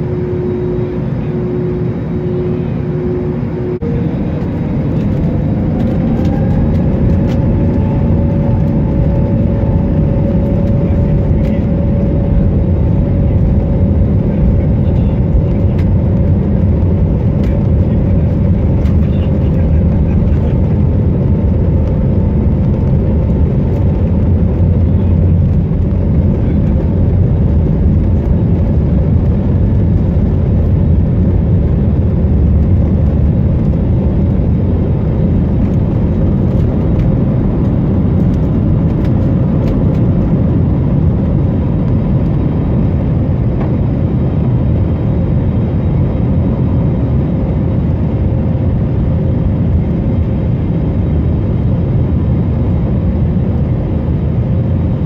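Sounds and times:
faint engine whine: 0.0 - 55.0
jet engines low rumble: 0.0 - 55.0.

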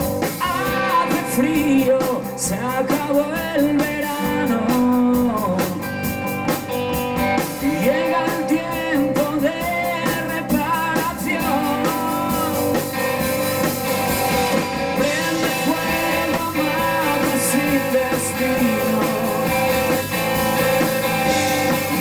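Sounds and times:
drum kit: 0.0 - 22.0
electric bass: 0.0 - 22.0
electric guitar: 0.0 - 22.0
man singing: 0.2 - 6.2, 7.4 - 13.2, 15.0 - 22.0.

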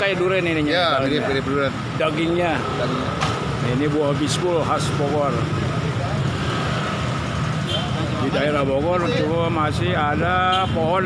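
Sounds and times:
road traffic rumble: 0.0 - 11.0.

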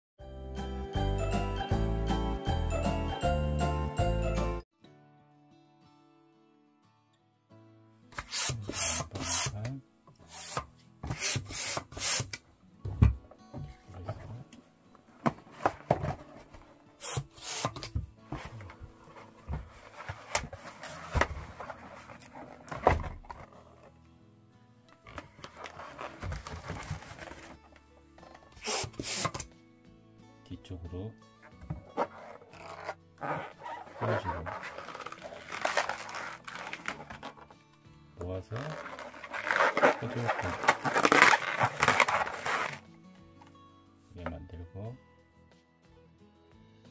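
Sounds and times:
balloon rubber squeaking: 8.2 - 9.6, 28.6 - 29.4, 31.8 - 37.5, 38.5 - 42.8
hand pump rasping air: 28.6 - 29.4.

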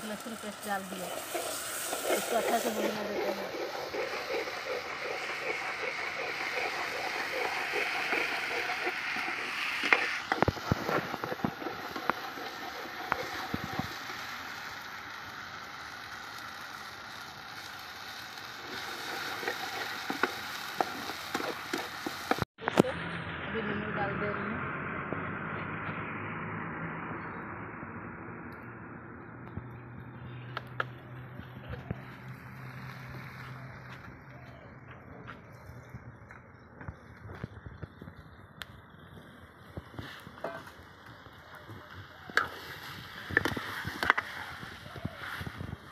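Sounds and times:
onions sizzling in oil: 0.0 - 22.5, 39.3 - 45.9
metal ladle scraping a pot: 0.9 - 13.9.

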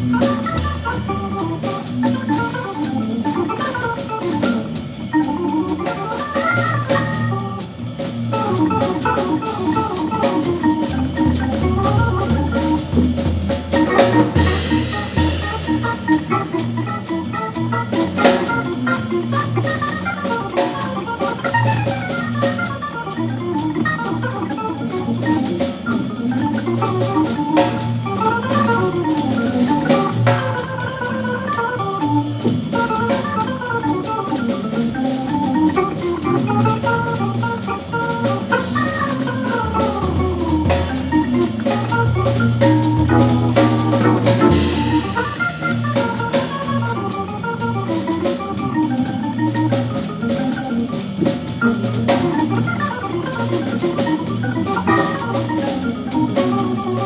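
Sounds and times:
bass line: 0.0 - 57.0
drum kit cymbals: 0.0 - 57.0
hammond organ jazz solo: 0.0 - 57.0.

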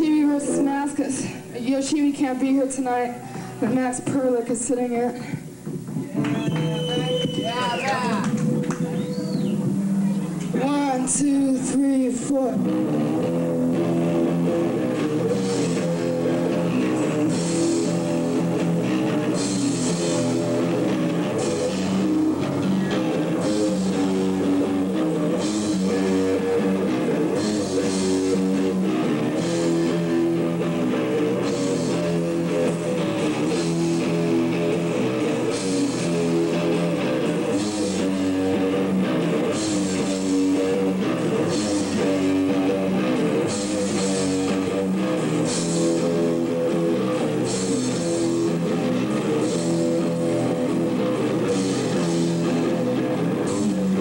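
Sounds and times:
live rock band playing: 5.5 - 54.0.

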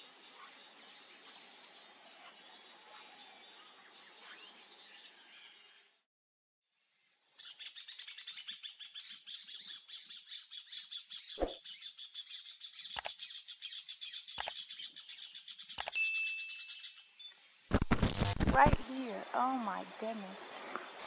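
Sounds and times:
birds chirping: 7.4 - 21.0
sharp clicks: 12.9 - 13.2, 14.4 - 14.6, 15.7 - 16.0
loud glitchy burst: 17.7 - 18.8.

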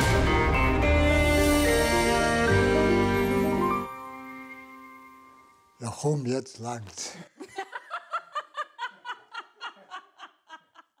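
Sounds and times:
person laughing: 7.4 - 11.0.

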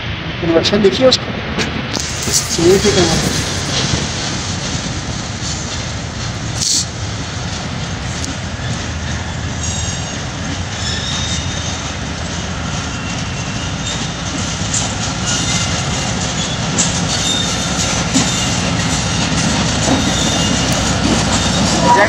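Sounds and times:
diesel locomotive engine rumbling: 0.0 - 22.0
train wheels clicking on rails: 1.5 - 22.0.

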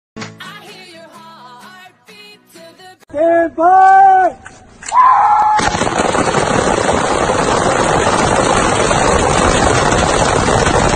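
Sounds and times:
rifles firing in volleys: 5.6 - 10.9.

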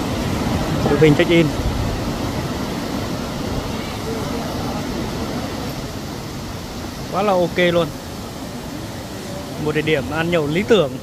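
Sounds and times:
river water rushing over rocks: 0.0 - 11.0.

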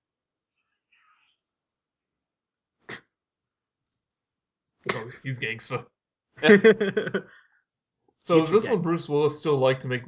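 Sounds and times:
faint breathy whisper: 4.9 - 5.8, 8.3 - 10.0.

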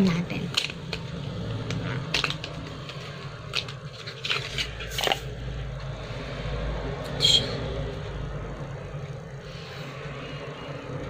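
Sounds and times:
paper packaging crinkling and clicking: 0.0 - 5.4.

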